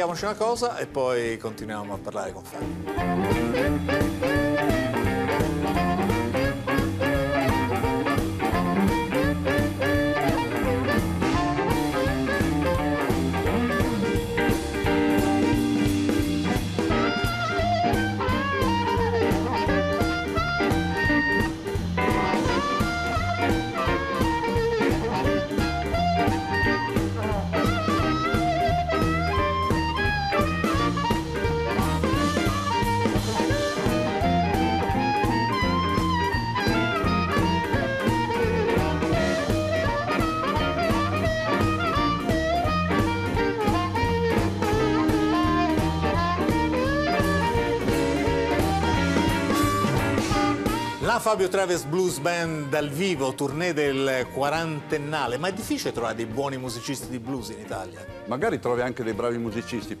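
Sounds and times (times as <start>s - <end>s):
electric guitars: 0.0s - 60.0s
harmonica with bent notes: 2.6s - 58.5s
drum kit steady beat: 2.6s - 60.0s.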